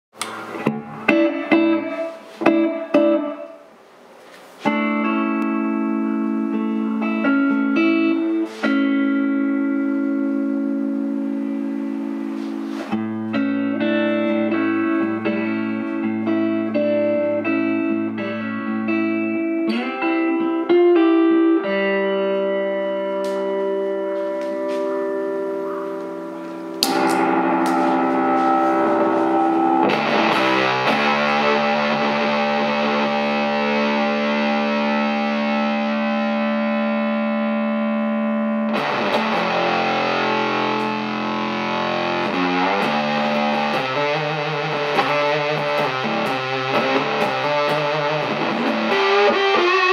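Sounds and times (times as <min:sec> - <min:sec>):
electric guitar notes and chords: 0:00.1 - 0:03.8, 0:04.6 - 0:49.9
fuzzy electric guitar: 0:00.1 - 0:49.9.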